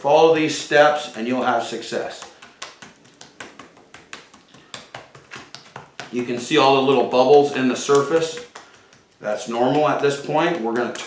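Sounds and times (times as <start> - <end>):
brush tapping wet epoxy: 0.0 - 11.0.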